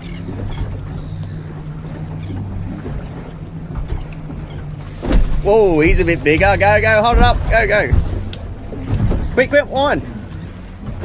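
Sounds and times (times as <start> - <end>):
outboard motor idling: 0.0 - 11.0
wind buffeting microphone: 0.1 - 11.0.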